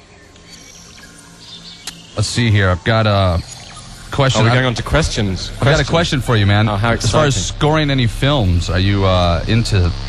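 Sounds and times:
sharp click: 1.8s - 2.2s.

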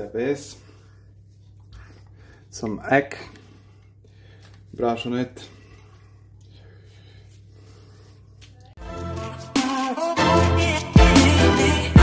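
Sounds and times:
background music with a beat: 8.8s - 12.0s.

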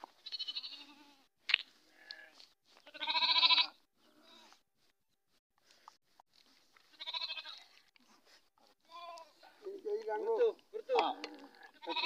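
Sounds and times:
goat bleating: 0.2s - 1.3s, 1.9s - 4.5s, 6.8s - 7.9s, 8.8s - 9.4s, 11.0s - 12.0s.

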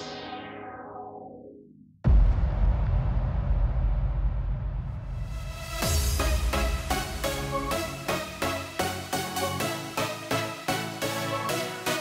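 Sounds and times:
electronic music low rumble: 0.0s - 8.8s.

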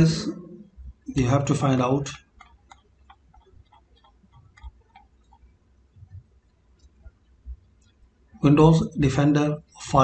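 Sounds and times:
mouse scroll wheel clicking: 2.3s - 6.2s.

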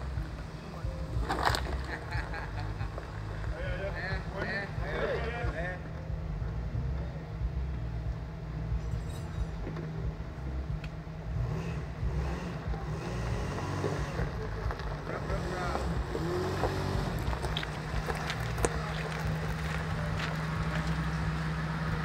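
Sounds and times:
vehicle engine low rumble: 0.0s - 22.0s.

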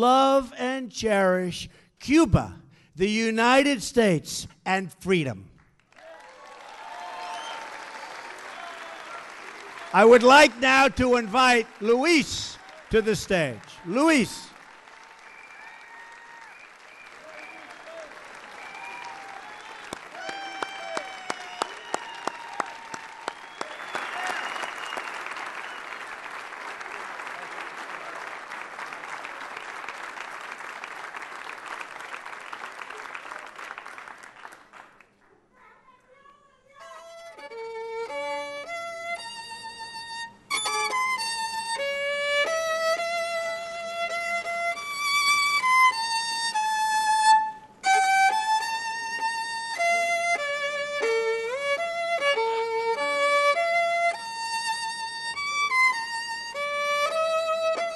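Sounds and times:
audience applauding and cheering: 5.8s - 35.1s
solo violin melody: 36.9s - 57.9s.

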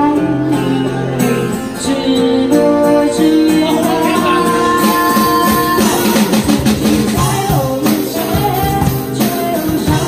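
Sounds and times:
person singing: 0.0s - 10.0s
strummed acoustic guitar: 0.0s - 10.0s
drum kit with cymbals: 4.2s - 10.0s.

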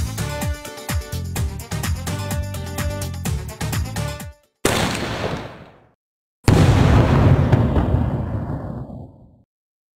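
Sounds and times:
firework bursting boom: 4.6s - 5.7s, 6.5s - 9.4s.

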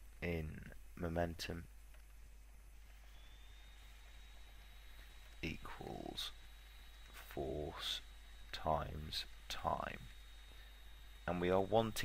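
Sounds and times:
faint recording hiss: 0.0s - 12.0s
low steady hum: 0.0s - 12.0s
faint high steady tone: 2.6s - 12.0s.

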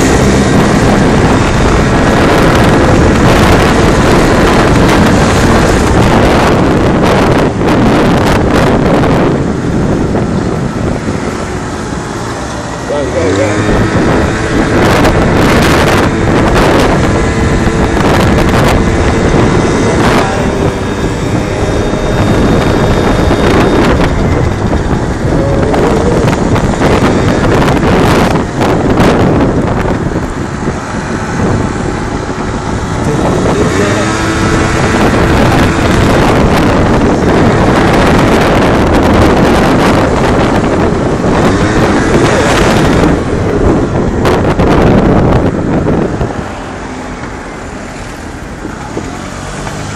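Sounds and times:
moped engine running: 0.0s - 49.9s
wind buffeting microphone: 0.0s - 49.9s.

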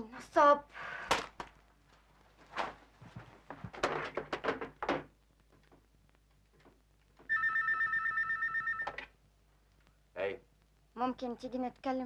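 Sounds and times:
telephone ringing trill: 7.3s - 9.1s.

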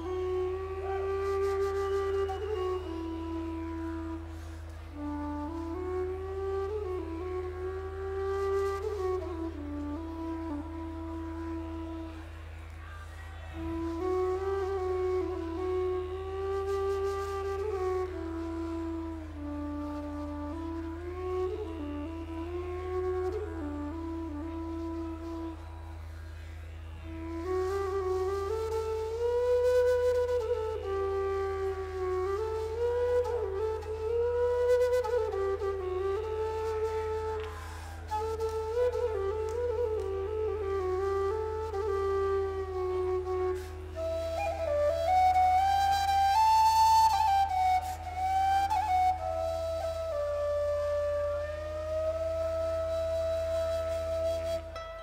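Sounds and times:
flutes playing slow melody: 0.0s - 55.0s.

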